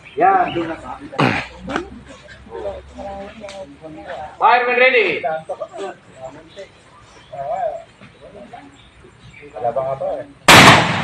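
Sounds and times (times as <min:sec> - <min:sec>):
shotgun shot with echo: 0:10.5 - 0:11.0.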